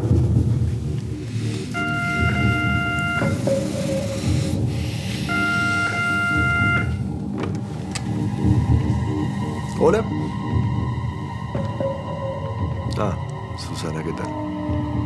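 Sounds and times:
background music: 0.0s - 15.0s
telephone ringing: 1.8s - 4.1s, 5.3s - 7.0s.

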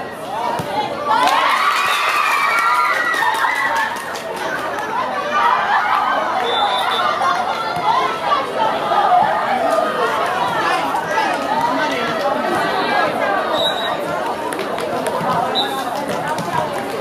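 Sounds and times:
children chattering: 0.0s - 17.0s.

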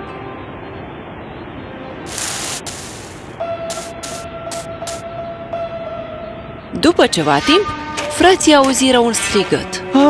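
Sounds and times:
quiet background music: 0.0s - 10.0s
hissing swishes: 2.1s - 5.0s.

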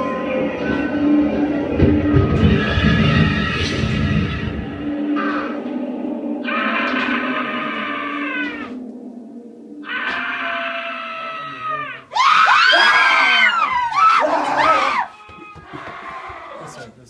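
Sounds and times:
low droning soundtrack: 0.0s - 12.0s
wavering cry: 4.8s - 16.8s
person screaming: 6.4s - 8.8s, 9.8s - 16.8s.

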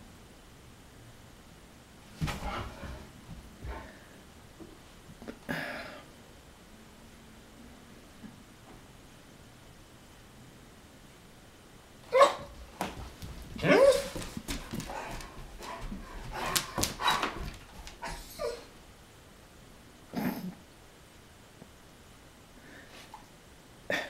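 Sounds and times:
dog barking: 12.1s - 12.6s.

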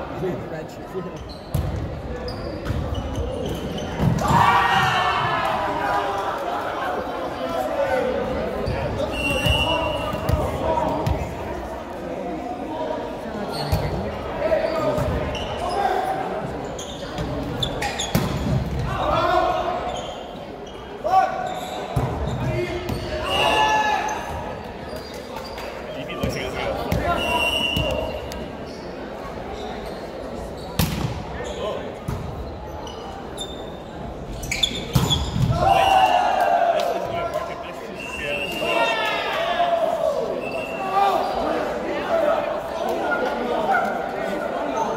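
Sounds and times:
players calling and shouting: 0.0s - 44.9s.

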